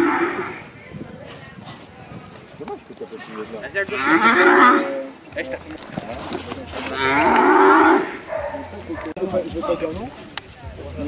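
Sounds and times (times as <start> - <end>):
bull mooing: 0.0 - 0.7, 3.9 - 5.0, 6.9 - 8.2.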